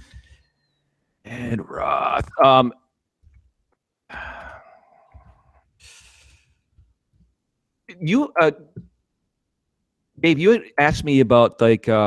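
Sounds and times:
person sighing: 0:04.1 - 0:05.2
hissy breath: 0:05.8 - 0:06.6.

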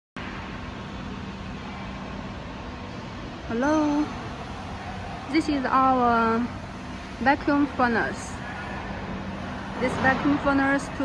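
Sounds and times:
industrial equipment hum: 0:00.2 - 0:11.0.

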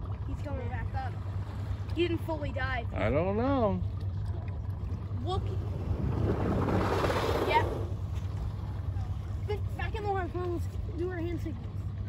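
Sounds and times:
steady low rumble: 0:00.0 - 0:12.0
whale blow exhalation: 0:05.8 - 0:08.0.

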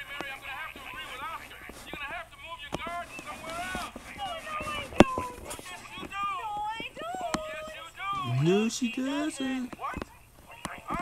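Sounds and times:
tv voices through small speaker: 0:00.0 - 0:11.0.

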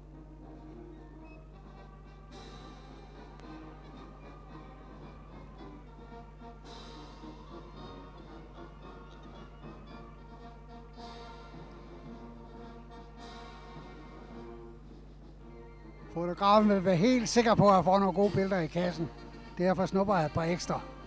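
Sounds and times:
low constant hum: 0:00.0 - 0:21.0.

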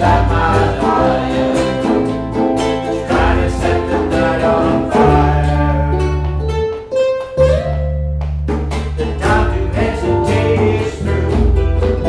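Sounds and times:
djembe drumming: 0:00.0 - 0:05.8, 0:08.5 - 0:12.0
people singing: 0:00.0 - 0:06.2, 0:09.0 - 0:12.0
bass notes: 0:00.0 - 0:12.0
strummed ukuleles: 0:00.0 - 0:12.0.

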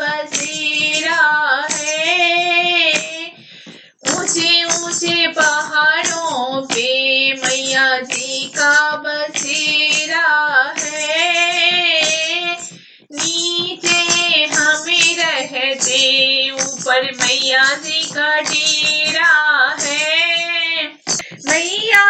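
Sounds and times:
high voice singing devotional song: 0:00.0 - 0:22.0.

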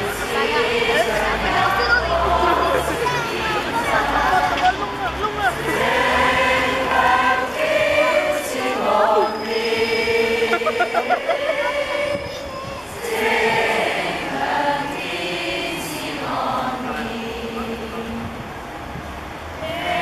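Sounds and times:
group singing a carol: 0:00.0 - 0:18.7, 0:19.5 - 0:20.0.

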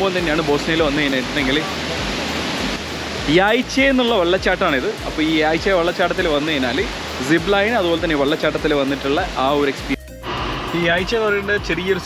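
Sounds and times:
man's voice: 0:00.0 - 0:02.0, 0:03.2 - 0:10.1, 0:10.7 - 0:12.0
waterfall roaring: 0:00.0 - 0:12.0.

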